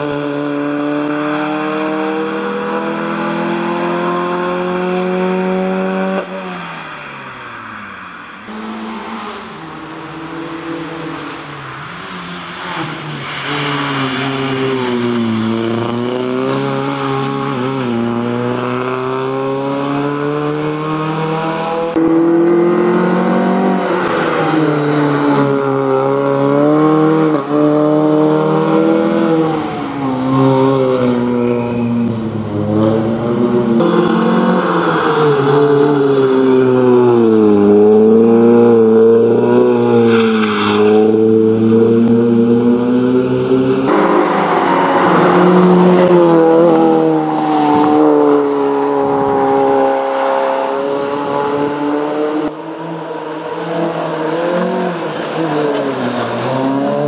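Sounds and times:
rally car engine revving: 0.0s - 7.1s, 8.4s - 57.0s.

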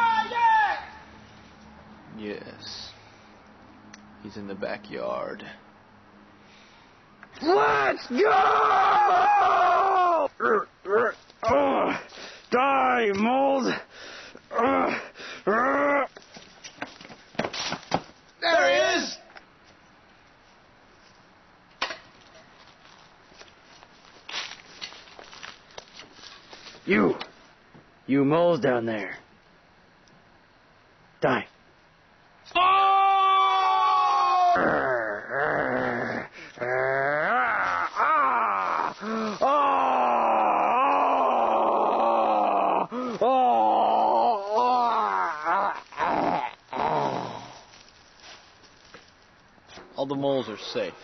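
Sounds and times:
man groaning and wailing: 7.4s - 13.9s, 14.5s - 16.1s, 32.5s - 47.7s.

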